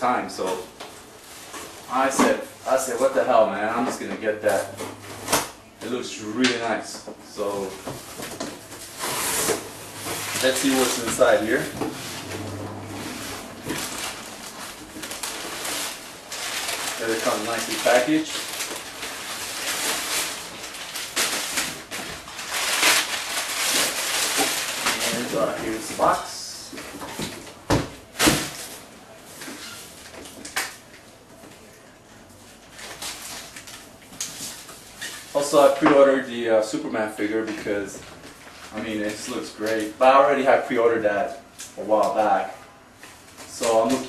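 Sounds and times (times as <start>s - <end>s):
packing paper rustling: 7.4s - 27.5s, 32.4s - 35.7s, 43.0s - 44.0s.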